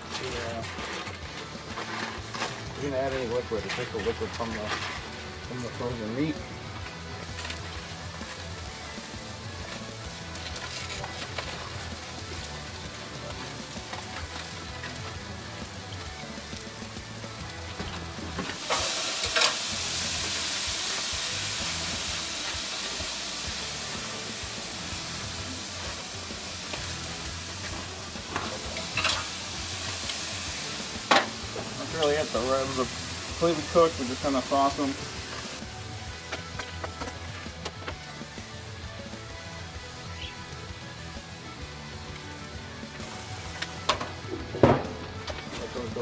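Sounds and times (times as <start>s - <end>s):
background music: 0.0s - 46.0s
ribs sizzling on a grill: 0.0s - 46.0s.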